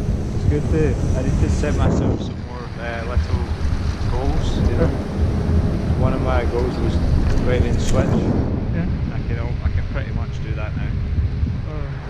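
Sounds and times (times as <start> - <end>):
indistinct talking: 0.0 - 11.0
wind buffeting microphone: 0.0 - 12.0.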